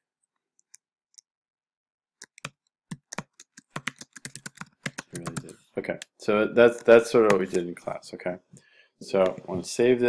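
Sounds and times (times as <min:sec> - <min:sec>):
computer keyboard typing: 0:02.2 - 0:05.5.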